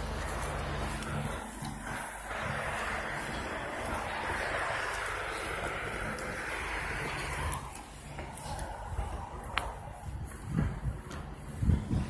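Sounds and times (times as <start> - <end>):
low engine hum: 0.0 - 12.0
street noise hiss: 0.0 - 12.0
wind on microphone: 0.0 - 12.0.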